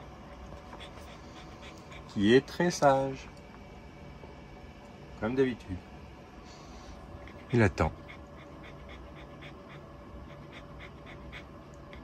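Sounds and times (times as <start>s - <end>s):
puppy panting: 0.2s - 3.0s, 6.5s - 12.0s.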